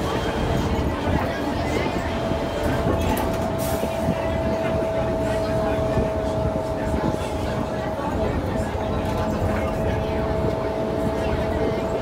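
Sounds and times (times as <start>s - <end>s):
bus body and doors rattling: 0.0s - 12.0s
bus diesel engine running: 0.0s - 12.0s.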